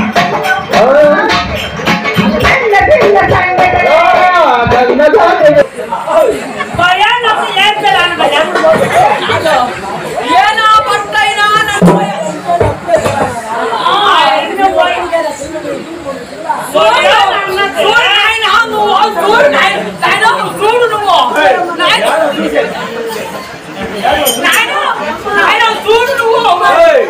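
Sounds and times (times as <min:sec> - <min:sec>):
people talking: 0:00.0 - 0:27.0.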